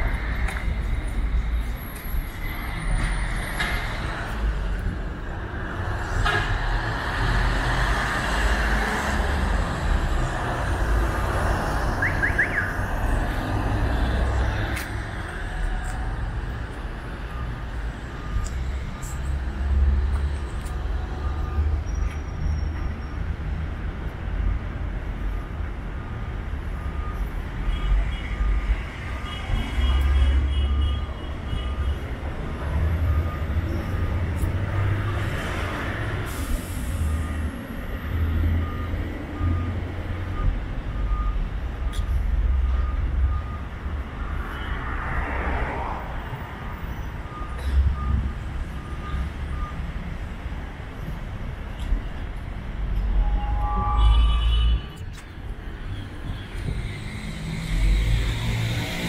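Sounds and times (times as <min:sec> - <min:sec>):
street traffic rumble: 0:00.0 - 0:59.0
reversing alarm beeping: 0:08.5 - 0:23.4, 0:25.1 - 0:44.7, 0:46.3 - 0:51.2.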